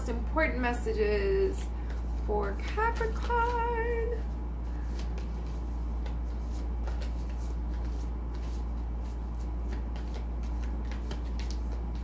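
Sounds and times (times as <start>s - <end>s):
cards being shuffled: 1.8s - 12.0s.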